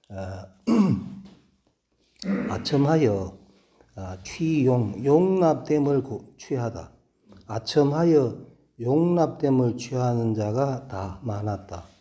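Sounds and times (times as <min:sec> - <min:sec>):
man's non-word vocal sounds: 0:00.0 - 0:01.2, 0:02.2 - 0:03.4.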